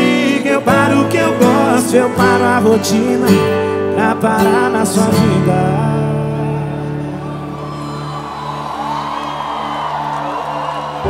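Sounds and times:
band playing with singing: 0:00.0 - 0:07.4
crowd cheering and whooping: 0:06.7 - 0:11.0.

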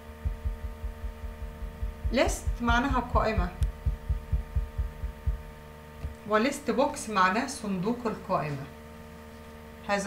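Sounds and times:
low soft thumps: 0:00.0 - 0:06.2
electrical hum: 0:00.0 - 0:10.0.

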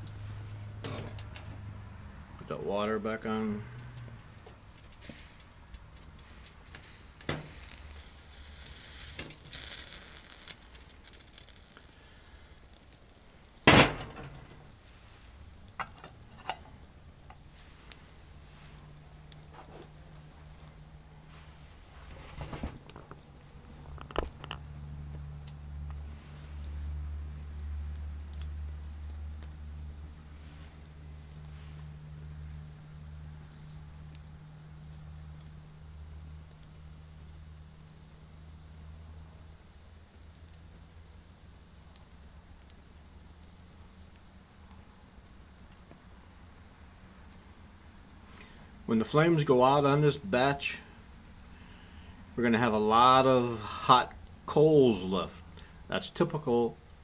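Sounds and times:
twigs crackling in stove: 0:00.0 - 0:57.0
sharp loud snap: 0:13.7 - 0:14.6.

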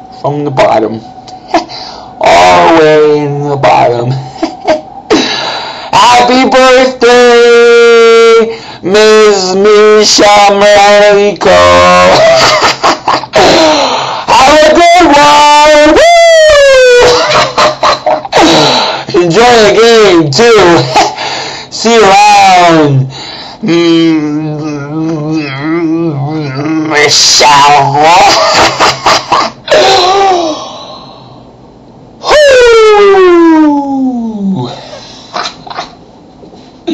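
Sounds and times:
man wailing: 0:01.5 - 0:19.8, 0:23.6 - 0:30.7, 0:32.2 - 0:34.8
man falsetto wail: 0:13.4 - 0:18.0, 0:29.7 - 0:30.6, 0:32.2 - 0:34.6
rough vocal sounds: 0:23.6 - 0:28.3.

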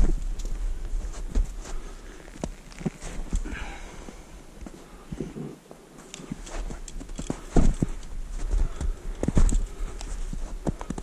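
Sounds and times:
footsteps crunching on snow and rock: 0:00.0 - 0:11.0.

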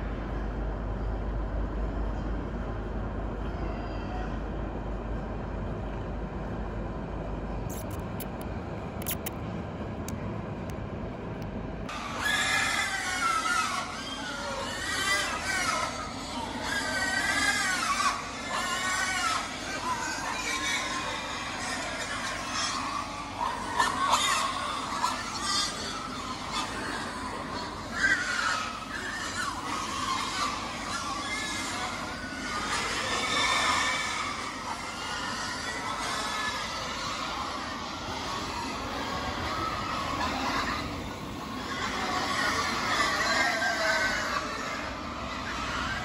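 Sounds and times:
young pigs squealing: 0:07.7 - 0:08.4, 0:11.9 - 0:46.0.

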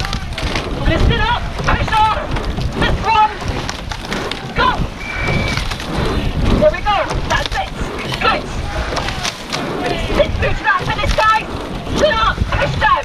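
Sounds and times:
rushing water: 0:00.0 - 0:13.0
wind buffeting microphone: 0:00.0 - 0:13.0.

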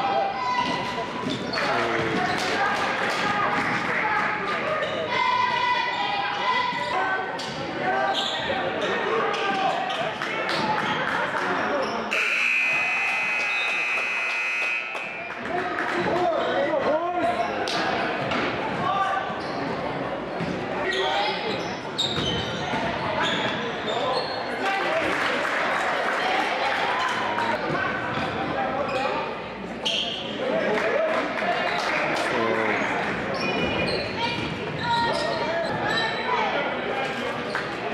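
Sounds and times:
voices echoing in hall: 0:00.0 - 0:37.9
scoreboard buzzer: 0:12.1 - 0:15.2.

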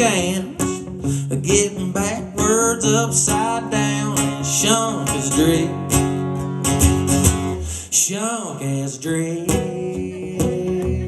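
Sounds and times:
nylon-string guitar strummed: 0:00.0 - 0:07.8, 0:08.6 - 0:11.0.

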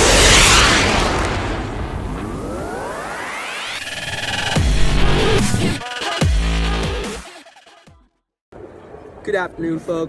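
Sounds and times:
rumbling cinematic boom: 0:00.0 - 0:05.6
synthesized riser sweeping upward: 0:00.0 - 0:06.0.

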